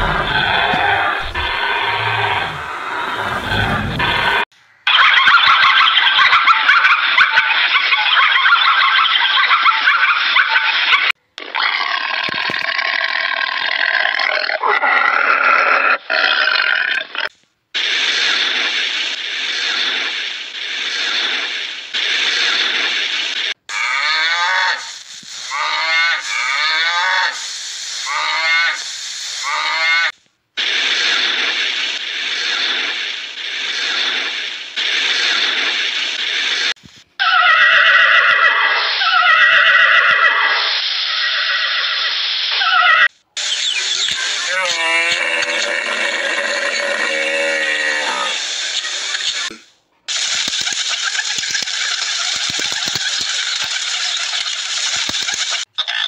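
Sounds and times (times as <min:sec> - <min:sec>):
horses whinnying: 0:00.0 - 0:04.4, 0:37.2 - 0:40.6, 0:44.4 - 0:48.6
harsh rasping animal cries: 0:23.7 - 0:27.4, 0:37.2 - 0:42.0, 0:44.4 - 0:49.5.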